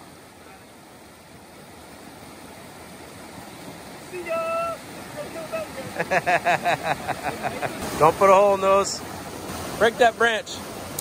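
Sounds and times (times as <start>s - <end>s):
creek water rushing over rocks: 0.0s - 11.0s.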